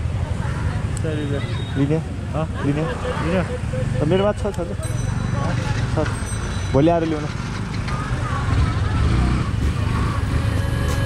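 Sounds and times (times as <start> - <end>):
faint voices of people: 0.0 - 6.2, 7.7 - 10.4
motorcycle engine low rumble: 3.6 - 11.0.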